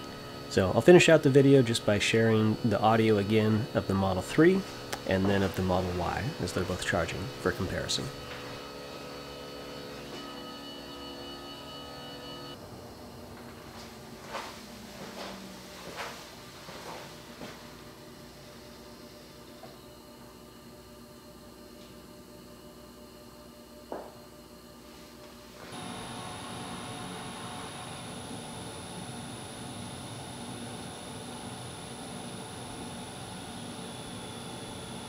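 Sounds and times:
fan-like noise with whine: 0.0s - 35.0s.

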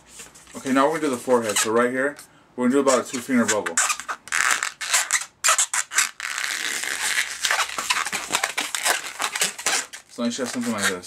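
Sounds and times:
balloon squeaking and rubbing: 1.3s - 2.0s, 2.8s - 11.0s.

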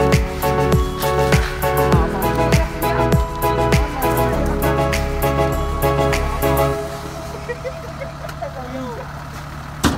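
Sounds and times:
diesel engine idling: 0.0s - 9.9s.

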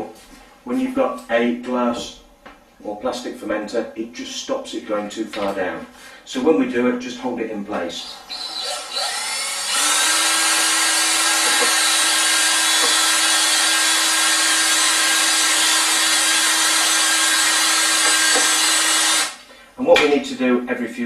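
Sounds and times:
electric drill whining: 8.0s - 19.4s.

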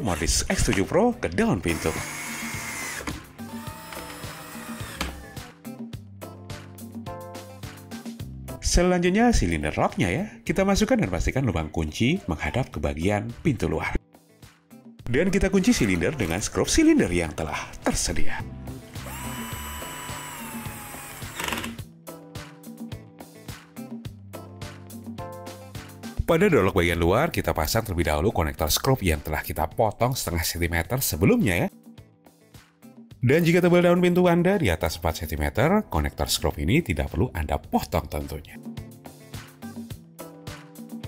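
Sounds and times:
background music: 0.0s - 41.0s
cordless drill driving screw: 1.7s - 5.5s, 19.0s - 21.8s.

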